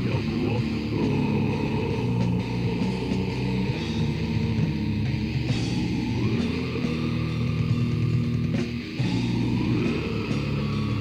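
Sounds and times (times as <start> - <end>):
distorted metal guitars and bass: 0.0 - 11.0.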